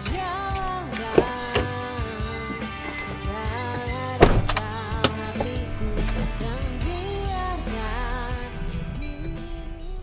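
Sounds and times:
background music melody: 0:00.0 - 0:10.0
car door thudding shut: 0:00.6 - 0:06.2.

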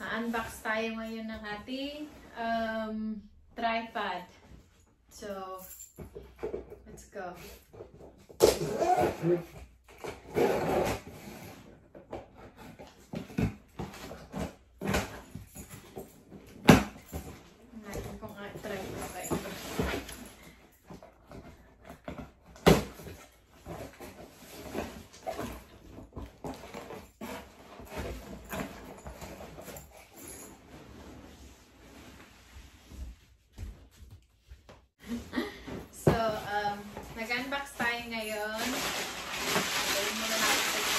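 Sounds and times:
rustling of bedding: 0:23.3 - 0:40.9.

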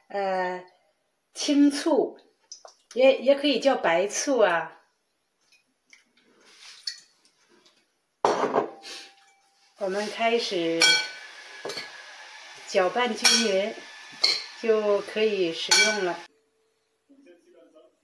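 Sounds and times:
metal utensils scraping glass bowl: 0:09.9 - 0:12.0, 0:13.0 - 0:15.0, 0:15.6 - 0:16.3.

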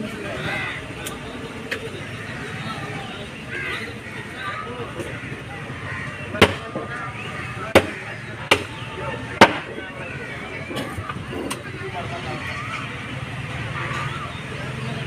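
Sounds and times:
murmur of voices: 0:00.0 - 0:15.0
cleaver chopping meat on wood: 0:06.4 - 0:06.9, 0:07.7 - 0:08.8, 0:09.4 - 0:09.7.

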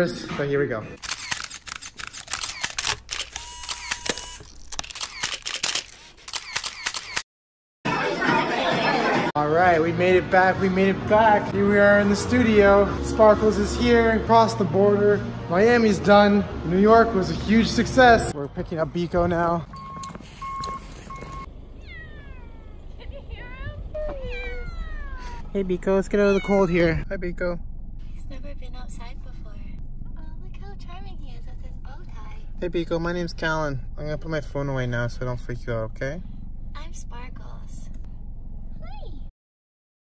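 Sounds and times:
camera shutters clicking: 0:01.0 - 0:07.2
steady beep: 0:19.7 - 0:21.5
cat meowing: 0:21.8 - 0:22.8, 0:24.0 - 0:25.5.

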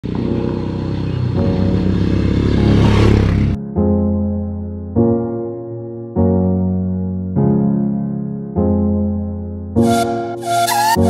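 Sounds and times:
motorcycle engine revving: 0:00.0 - 0:03.6
electric piano music: 0:00.1 - 0:11.0.

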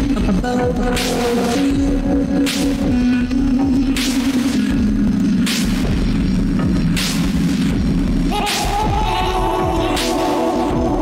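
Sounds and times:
low synthesizer bass drone: 0:00.0 - 0:11.0.

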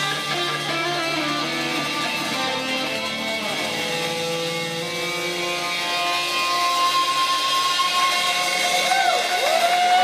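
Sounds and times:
high guitar note held: 0:00.0 - 0:09.5.

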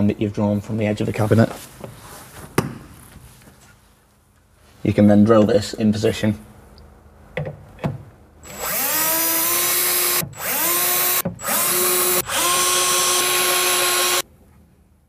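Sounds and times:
cordless drill whining: 0:08.4 - 0:14.2.

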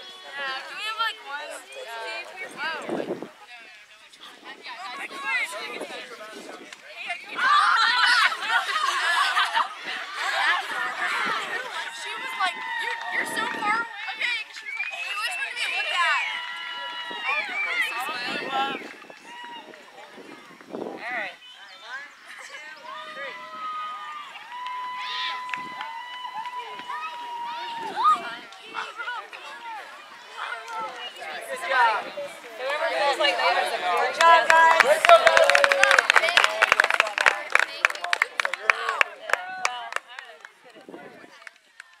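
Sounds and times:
group of voices talking and calling: 0:00.0 - 0:42.0
sharp claps: 0:34.0 - 0:42.0.

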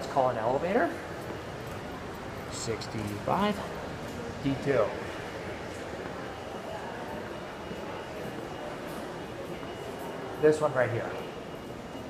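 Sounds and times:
lobby background noise: 0:00.0 - 0:12.0.

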